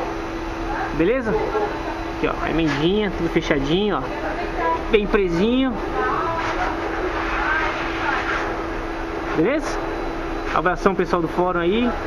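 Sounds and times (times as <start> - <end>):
faint voices: 0.6 - 8.8.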